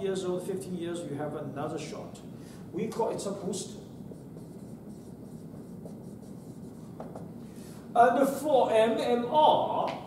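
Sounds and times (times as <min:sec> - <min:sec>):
low room hum: 0:00.0 - 0:10.0
marker writing on whiteboard: 0:04.0 - 0:07.4.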